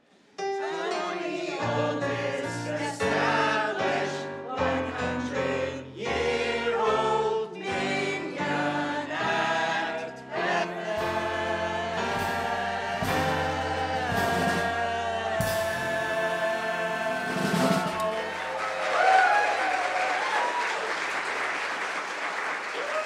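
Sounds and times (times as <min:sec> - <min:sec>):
mixed chorus singing in unison: 0:00.4 - 0:18.8.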